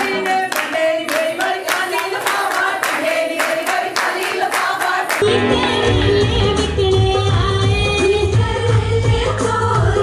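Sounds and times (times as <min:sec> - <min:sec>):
women clapping in rhythm: 0:00.0 - 0:05.2
women singing folk song: 0:00.0 - 0:10.0.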